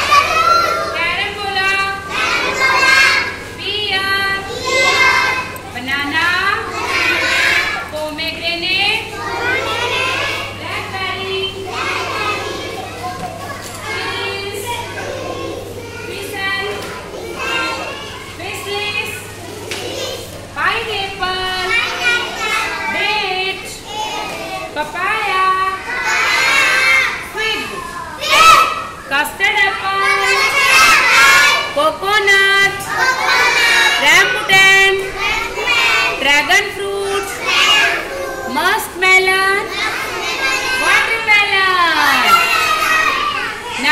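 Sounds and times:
steady low hum: 0:00.0 - 0:43.9
young children chattering: 0:00.0 - 0:43.9.

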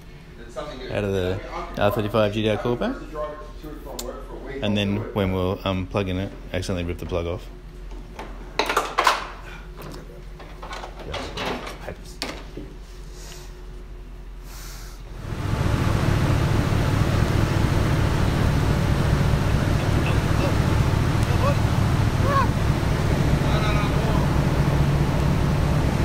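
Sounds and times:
car engine running: 0:15.1 - 0:26.0.

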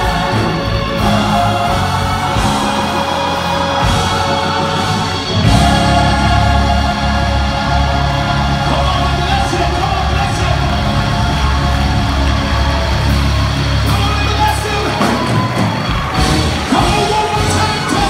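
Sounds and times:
band with heavy bass: 0:00.0 - 0:18.0
congregation shouting: 0:00.0 - 0:18.0
gospel choir singing: 0:00.0 - 0:18.0.

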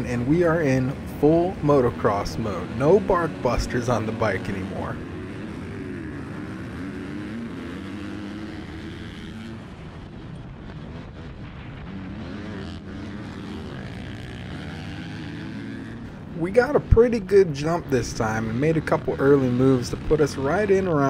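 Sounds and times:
dirt bike engine revving: 0:00.0 - 0:21.0
motocross bikes racing: 0:00.0 - 0:21.0.

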